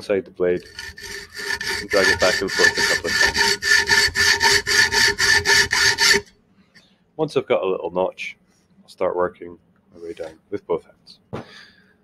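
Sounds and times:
hacksaw cutting metal: 0:00.6 - 0:06.3.

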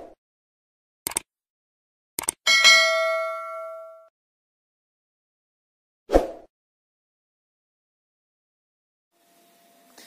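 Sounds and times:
bright bell ding: 0:02.5 - 0:04.1.

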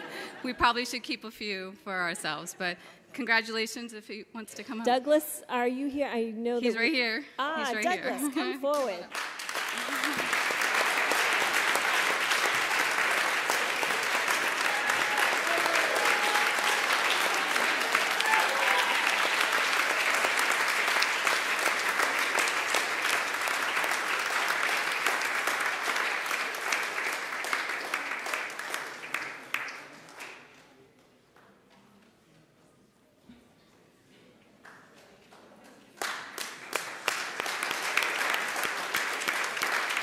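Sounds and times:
audience clapping: 0:07.6 - 0:30.7, 0:34.6 - 0:40.0.

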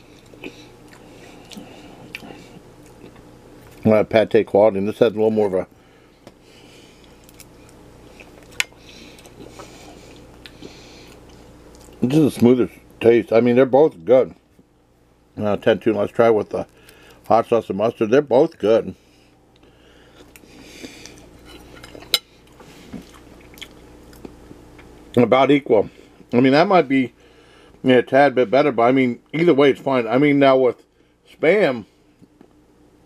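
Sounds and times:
person chewing: 0:00.0 - 0:03.8, 0:06.9 - 0:12.0, 0:19.5 - 0:25.0
faint steady hum: 0:00.0 - 0:33.0.

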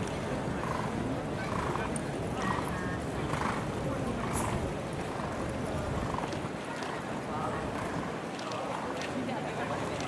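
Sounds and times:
horse hooves clopping: 0:00.0 - 0:10.0
people chattering: 0:00.0 - 0:10.0.

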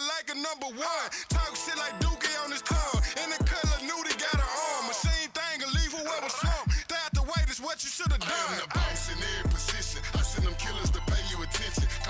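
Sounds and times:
rapping over a beat: 0:00.0 - 0:12.0
deep sliding bass notes: 0:08.8 - 0:12.0.

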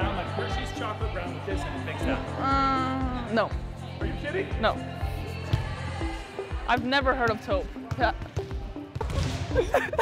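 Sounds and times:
balls bouncing on gym floor: 0:06.7 - 0:09.6
giggling and laughter: 0:09.2 - 0:10.0.

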